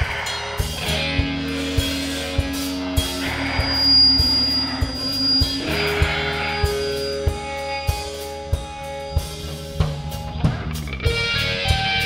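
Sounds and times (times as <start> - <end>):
drum beat: 0.0 - 12.0
electric guitar sustained note: 0.0 - 12.0
rock band playing: 0.0 - 12.0.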